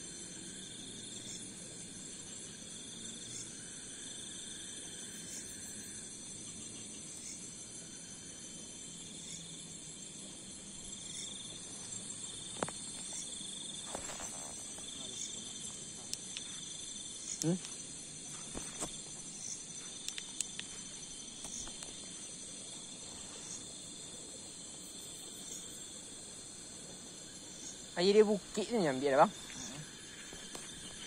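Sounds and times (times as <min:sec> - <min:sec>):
insect trill: 0:00.0 - 0:31.0
insects buzzing: 0:00.0 - 0:31.0
faint clicks: 0:20.0 - 0:20.7.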